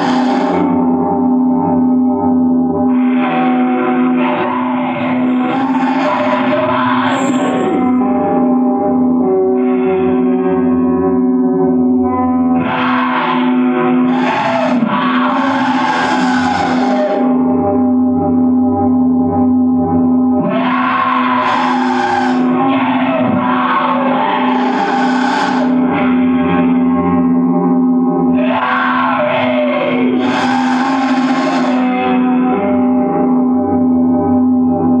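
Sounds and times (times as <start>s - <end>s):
metal music with distorted guitar: 0.0s - 34.9s.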